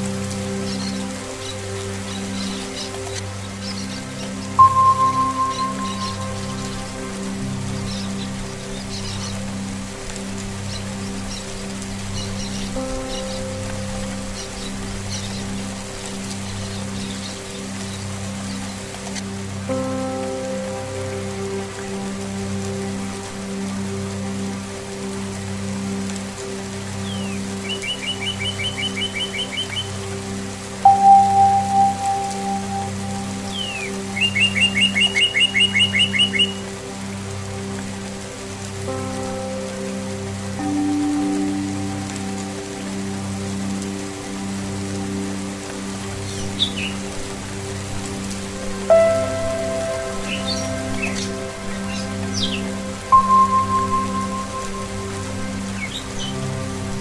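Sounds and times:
rain falling: 0.0 - 57.0
string and singing-bowl drone: 0.0 - 57.0
struck bell tone: 4.6 - 6.4
songbird trilling: 4.6 - 6.8.

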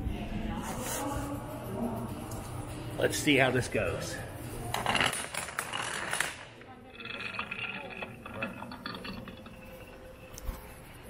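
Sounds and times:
dominoes toppling: 4.7 - 10.5.

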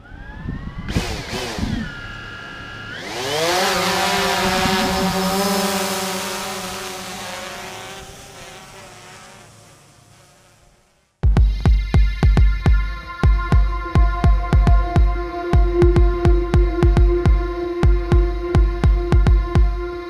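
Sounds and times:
motor whine: 0.0 - 20.0
loud rising rush: 1.0 - 10.6.

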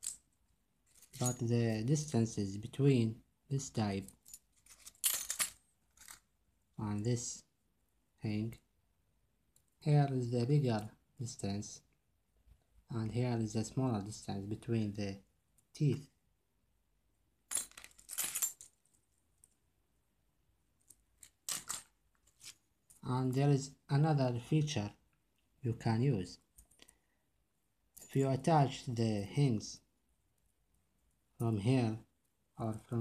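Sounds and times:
metal links clinking and jingling: 0.0 - 2.1, 4.1 - 6.2, 17.5 - 19.0, 21.2 - 23.0.

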